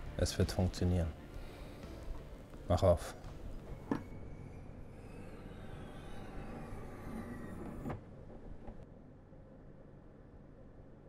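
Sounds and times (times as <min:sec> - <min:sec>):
centrifuge humming: 0:03.2 - 0:08.9
whining tones gliding down: 0:03.5 - 0:08.8.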